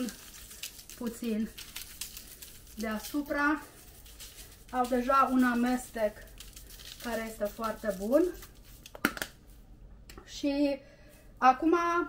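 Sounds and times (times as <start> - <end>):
plastic spice shaker handled: 0.0 - 9.4.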